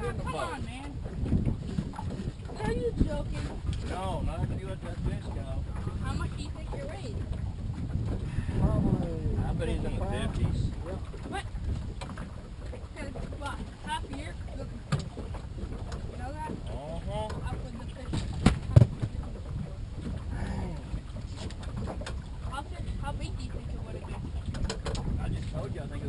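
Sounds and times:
wind buffeting microphone: 0.0 - 26.0
sharp knocks: 18.1 - 19.2.

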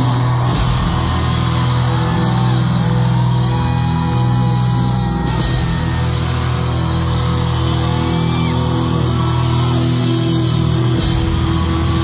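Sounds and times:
distorted guitars and bass: 0.0 - 12.0
live rock band: 0.0 - 12.0.

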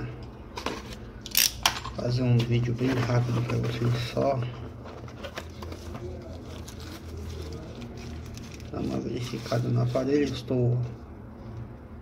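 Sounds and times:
plastic rustling: 2.6 - 10.5.

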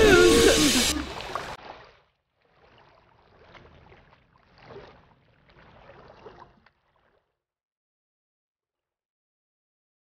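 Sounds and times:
river water lapping on rocks: 0.9 - 7.3.

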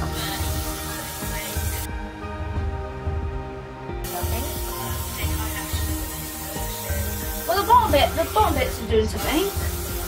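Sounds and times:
aerosol hairspray hissing: 0.0 - 1.9, 4.0 - 10.0
background music with steady beat: 0.0 - 10.0.

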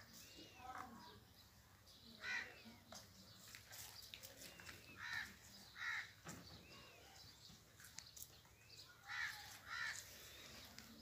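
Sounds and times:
faint bird chirps: 0.0 - 11.0.

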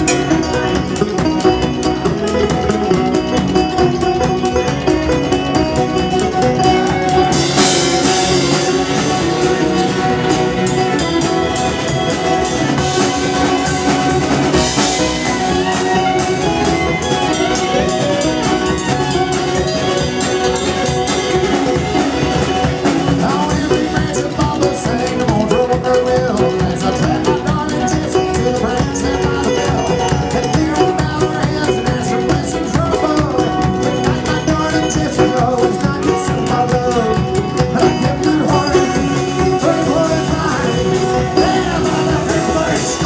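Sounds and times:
string band playing: 0.0 - 43.0.

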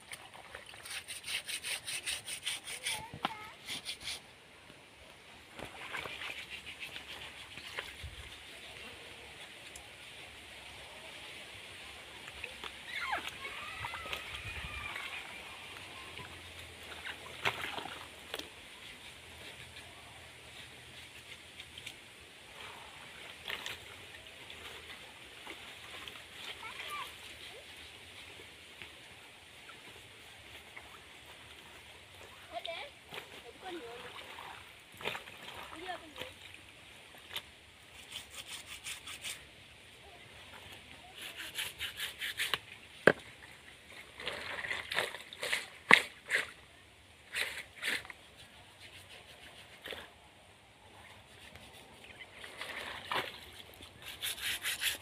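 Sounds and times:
rapid scrubbing of fabric: 0.8 - 4.2, 53.6 - 55.0
wet fabric sloshing in water: 5.5 - 8.7, 12.4 - 18.6, 30.2 - 37.5, 43.3 - 46.2, 50.9 - 54.0
sharp water splashes: 41.1 - 46.6.

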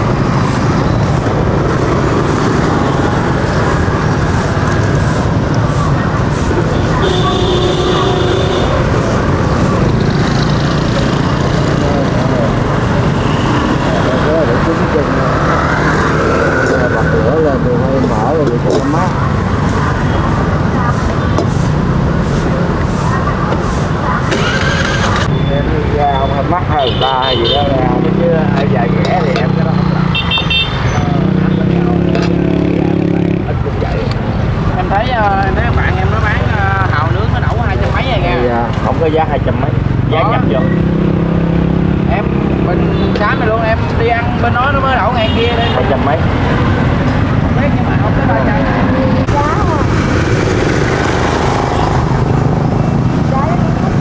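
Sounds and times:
motorbikes passing: 0.0 - 54.0
people talking: 2.5 - 15.8, 16.4 - 30.2, 30.9 - 41.0, 42.0 - 54.0.

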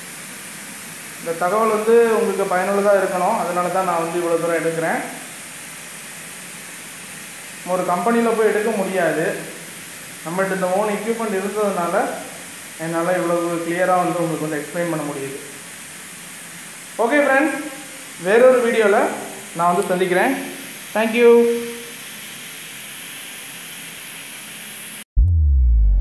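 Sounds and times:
faint hiss: 0.0 - 25.0
man talking: 1.3 - 5.2, 10.3 - 15.5, 17.0 - 21.8.

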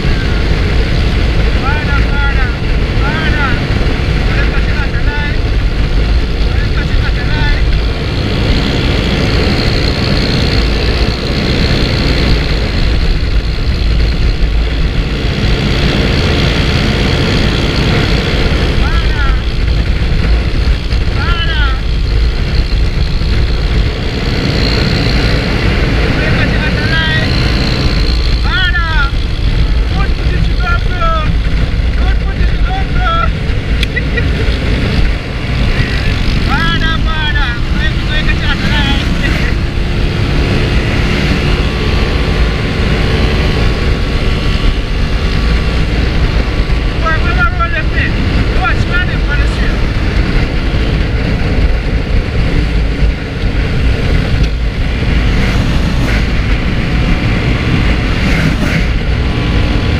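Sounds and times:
motorcycle engine running: 0.0 - 59.9
road and wind rush: 0.0 - 59.9.

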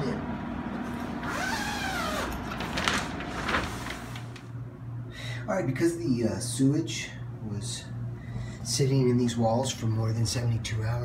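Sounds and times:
zipper rasping open: 1.2 - 2.4
plastic sheeting crinkling: 1.4 - 4.5.

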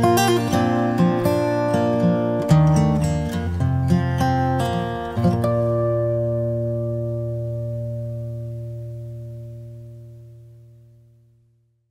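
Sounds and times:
acoustic guitar chord ringing: 0.0 - 11.6.

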